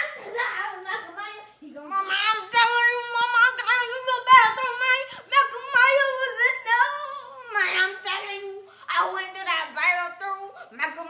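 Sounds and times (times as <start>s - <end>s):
child singing: 0.0s - 11.0s.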